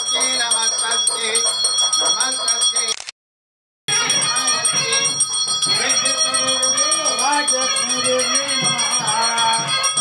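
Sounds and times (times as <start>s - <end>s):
bell rung rapidly: 0.0s - 3.0s, 3.9s - 10.0s.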